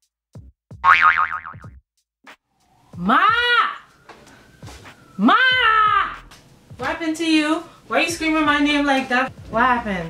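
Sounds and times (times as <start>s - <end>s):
cartoon boing: 0.8s - 1.7s.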